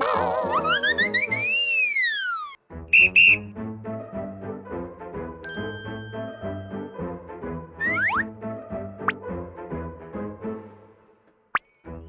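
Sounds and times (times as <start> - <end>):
shrill whistle toots: 0.5 - 3.5, 7.8 - 8.3
whistle gliding down: 0.5 - 3.5, 7.8 - 8.2.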